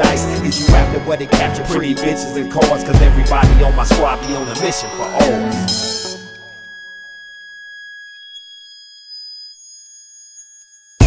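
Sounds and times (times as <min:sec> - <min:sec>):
high-pitched electronic tones: 0:00.0 - 0:11.0.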